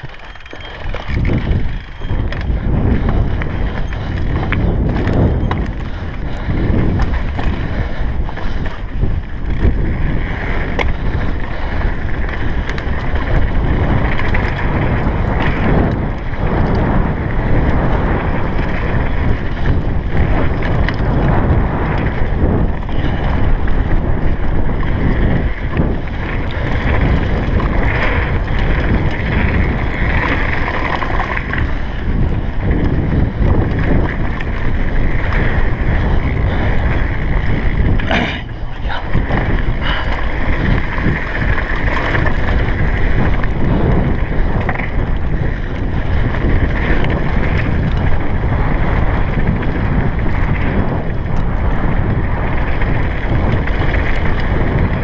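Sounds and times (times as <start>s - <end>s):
mountain bike rattling: 0.0s - 55.0s
tyres rumbling over rocky gravel: 0.0s - 55.0s
wind buffeting microphone: 0.0s - 55.0s.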